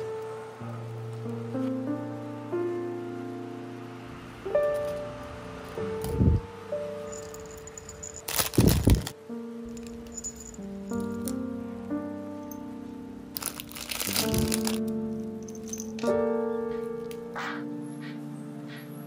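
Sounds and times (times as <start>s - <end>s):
soft background music: 0.0s - 19.0s
keychains rattling: 4.6s - 5.0s, 7.0s - 11.4s, 13.3s - 16.2s.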